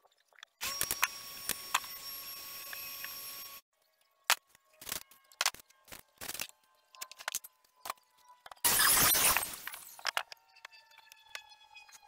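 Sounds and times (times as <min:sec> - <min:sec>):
circular saw cutting wood: 0:00.6 - 0:03.7.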